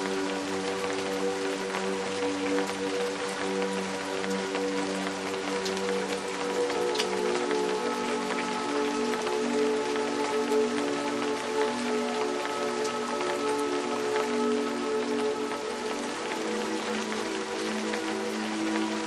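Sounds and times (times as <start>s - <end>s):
ambient music: 0.0s - 19.0s
steady rain: 0.0s - 19.0s.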